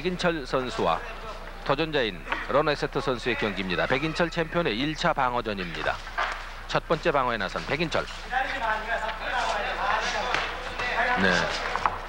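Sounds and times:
man talking: 0.0 - 6.1, 6.7 - 11.7
arena crowd noise: 0.0 - 12.0.

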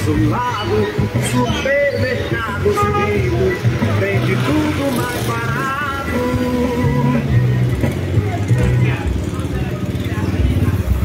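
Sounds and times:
cars passing: 0.0 - 11.0
motorcycle passing: 0.0 - 11.0.

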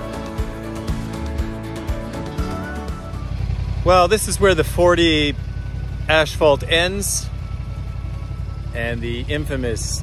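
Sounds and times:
background music: 0.0 - 3.9
motorcycle engine running: 0.0 - 10.0.

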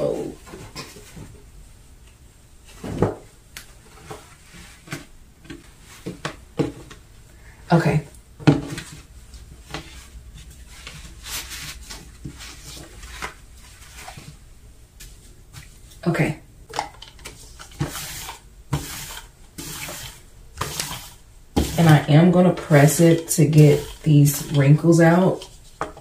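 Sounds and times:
cardboard scraping: 8.5 - 14.4, 17.4 - 26.0
lint roller on shirt: 9.4 - 14.4, 17.4 - 25.8.

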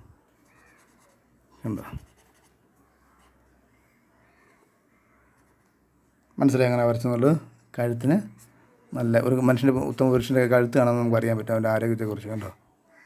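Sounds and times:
marker pen scratching paper: 0.3 - 2.6.

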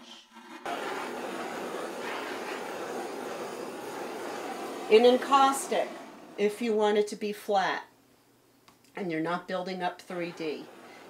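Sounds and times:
butane torch hissing: 0.7 - 6.5, 10.0 - 11.0.

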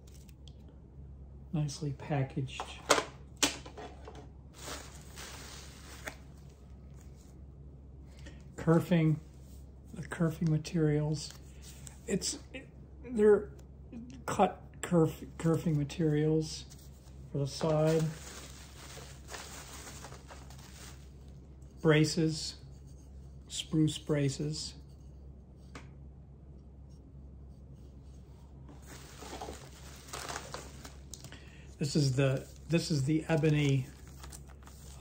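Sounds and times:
plastic packaging rustling: 3.6 - 7.1, 16.7 - 21.3, 28.8 - 35.0.

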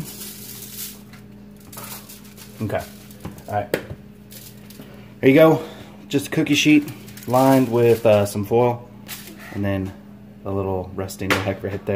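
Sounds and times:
shaker bottle rattling: 0.0 - 3.6, 4.3 - 4.9, 6.6 - 8.4.

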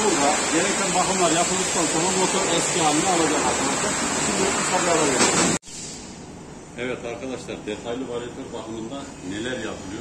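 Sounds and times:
polishing wheel hissing: 0.0 - 5.4.

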